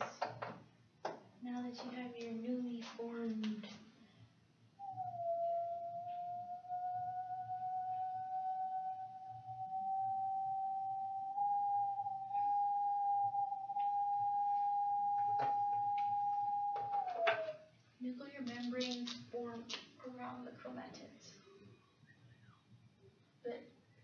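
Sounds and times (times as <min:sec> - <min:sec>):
high pure tone: 0:04.8 - 0:17.7.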